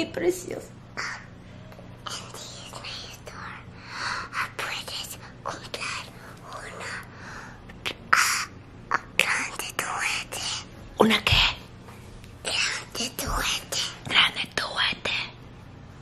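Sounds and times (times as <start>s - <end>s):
girl whispering: 1.0s - 1.3s, 2.0s - 7.1s, 7.8s - 11.6s, 12.4s - 15.4s.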